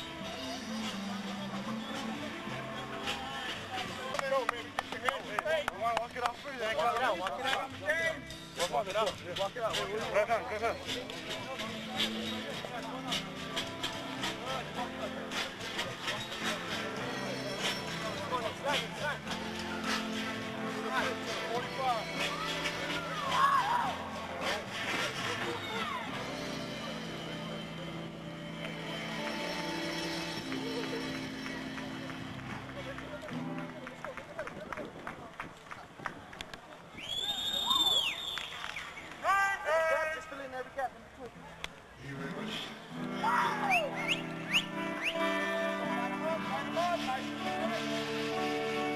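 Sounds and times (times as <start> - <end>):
sharp clicks and claps: 3.5 - 7.7, 28.6 - 39.3
group shouting and chanting: 22.2 - 24.5, 43.1 - 44.0.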